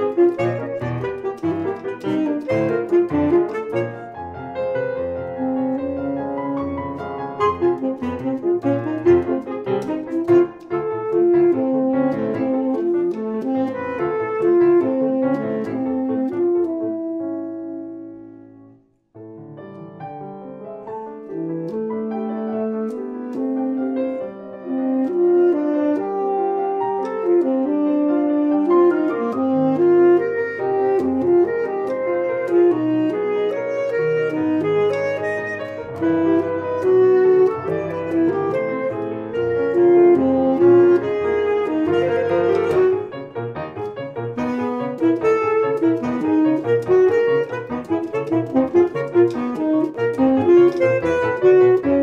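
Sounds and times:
tenor saxophone: 0:00.0 - 0:18.1, 0:21.0 - 0:52.0
grand piano: 0:00.0 - 0:52.0.

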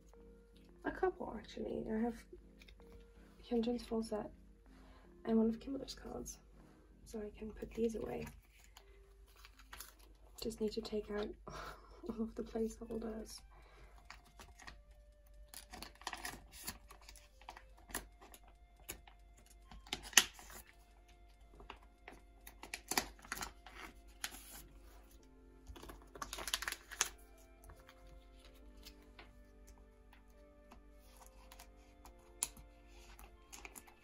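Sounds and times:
background music with held notes: 0:00.0 - 0:34.0
plastic sleeves crinkling: 0:07.6 - 0:11.2, 0:12.1 - 0:34.0.

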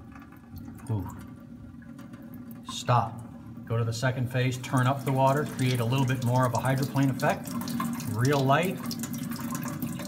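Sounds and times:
tap water running onto whetstone: 0:00.0 - 0:10.0.

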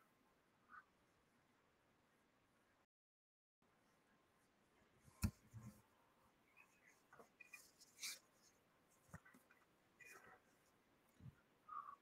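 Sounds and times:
faint scratchy rustles: 0:06.5 - 0:11.4.

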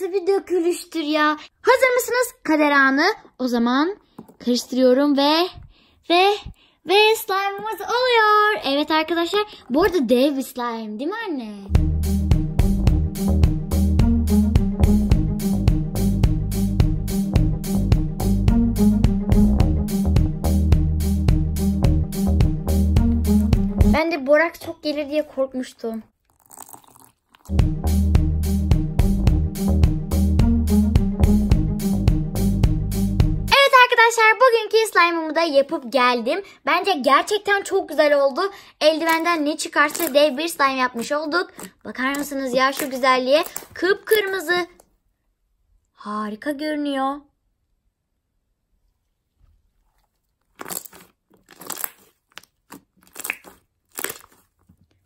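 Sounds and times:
background music with beat and bass: 0:11.7 - 0:24.0, 0:27.5 - 0:33.5
slime squishing: 0:24.2 - 0:27.6, 0:38.8 - 0:44.6, 0:49.2 - 0:55.0.

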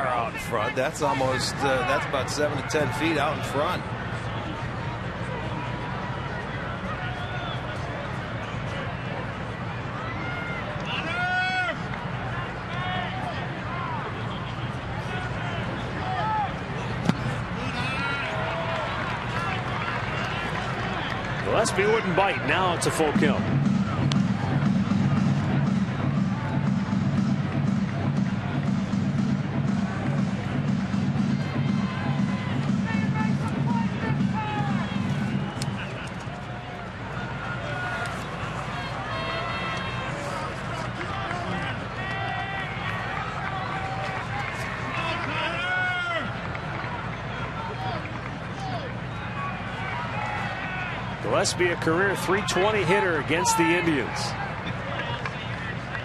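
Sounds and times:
crowd chatter: 0:00.0 - 0:56.0
stadium music with pulsing bass: 0:20.6 - 0:40.1, 0:51.1 - 0:54.9.

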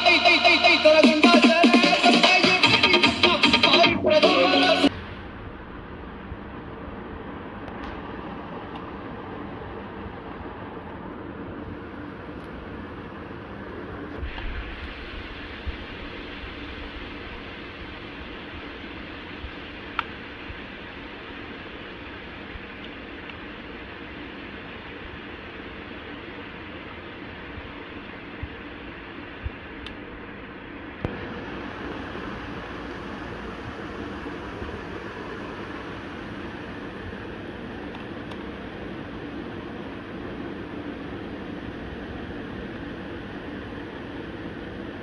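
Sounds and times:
steady hissing noise: 0:00.0 - 0:45.0.

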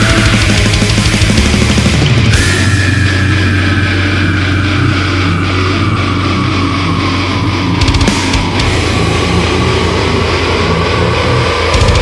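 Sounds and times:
distorted guitars: 0:00.0 - 0:12.0
cymbal hits: 0:02.3 - 0:05.7.

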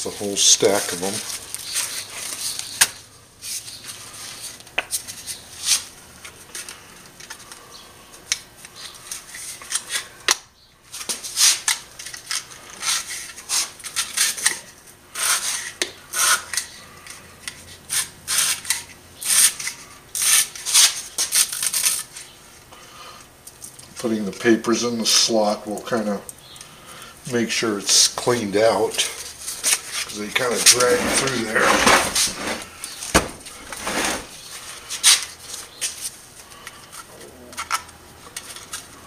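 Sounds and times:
paper scraping in metal slots: 0:29.6 - 0:34.3.

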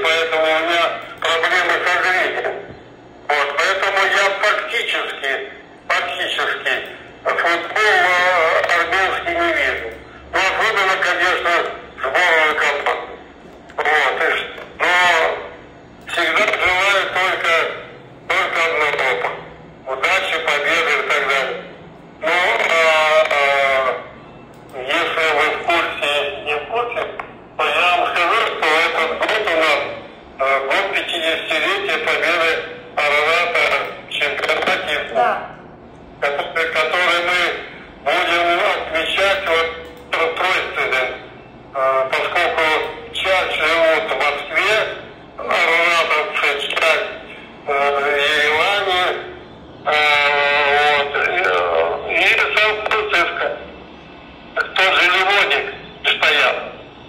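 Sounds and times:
man speaking: 0:00.0 - 0:02.7, 0:03.3 - 0:53.8, 0:54.5 - 0:56.8
man talking: 0:00.0 - 0:02.7, 0:03.3 - 0:53.7, 0:54.5 - 0:56.8.

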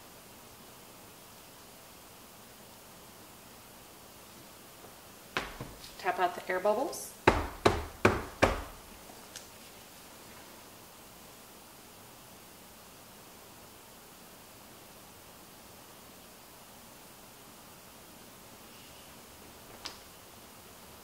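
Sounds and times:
faint room hiss: 0:00.0 - 0:21.0
silicone mold knocked on table: 0:05.4 - 0:05.8, 0:07.3 - 0:08.8.

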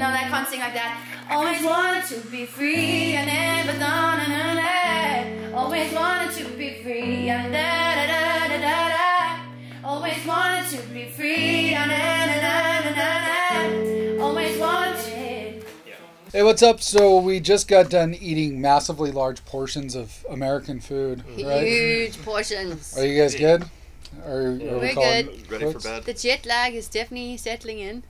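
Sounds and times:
bass and chord notes: 0:00.0 - 0:02.0, 0:02.6 - 0:15.6
woman singing pop melody: 0:00.0 - 0:15.7, 0:21.3 - 0:22.5, 0:24.6 - 0:25.4.

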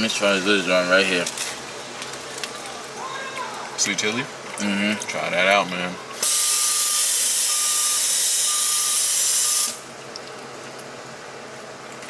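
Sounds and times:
loud steady hiss: 0:00.0 - 0:03.2, 0:05.9 - 0:09.9
faint repeating beep: 0:06.4 - 0:09.6.

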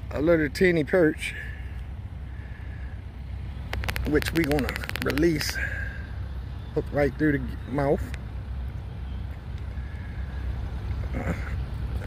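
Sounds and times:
low outdoor rumble: 0:00.0 - 0:12.0
sharp clicks: 0:03.6 - 0:05.6.

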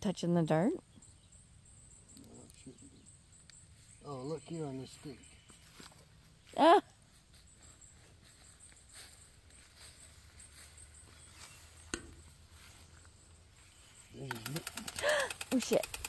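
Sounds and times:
faint garden ambience: 0:00.0 - 0:16.0
person speaking: 0:14.1 - 0:16.0.

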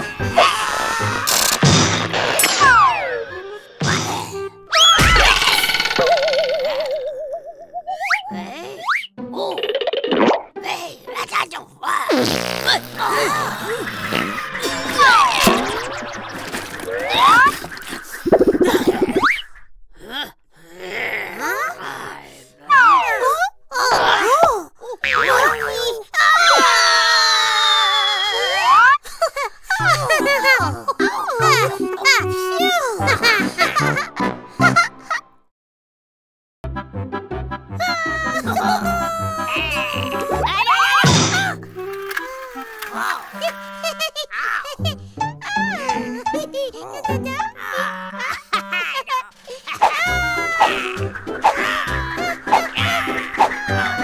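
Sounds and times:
background music: 0:00.0 - 0:07.2, 0:29.8 - 0:35.2, 0:36.6 - 0:54.0
cartoon sound effects: 0:01.1 - 0:06.9, 0:12.6 - 0:19.4
cartoon hit: 0:04.9 - 0:06.1, 0:41.0 - 0:41.6.

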